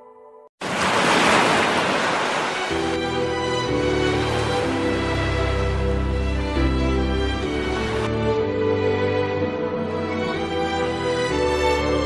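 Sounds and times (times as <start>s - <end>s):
ocean waves rushing: 0.6s - 6.5s, 7.1s - 8.1s.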